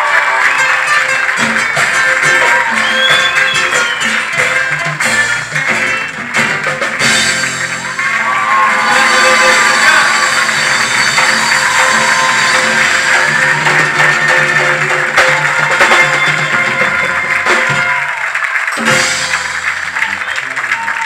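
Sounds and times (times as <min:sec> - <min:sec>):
percussion: 0:00.0 - 0:21.0
acoustic guitars playing: 0:00.6 - 0:18.0.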